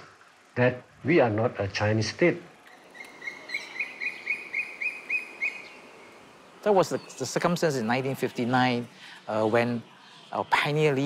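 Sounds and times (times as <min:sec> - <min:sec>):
faint outdoor ambience: 0:00.0 - 0:11.0
bird chirping rapidly: 0:02.7 - 0:08.8.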